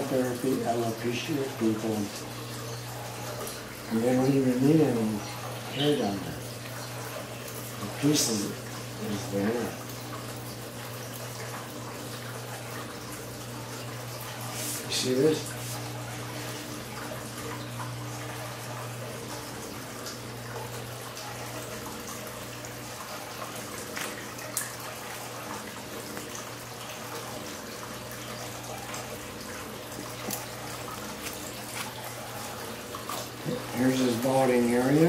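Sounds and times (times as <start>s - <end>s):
shears snipping hair: 30.2s - 32.1s.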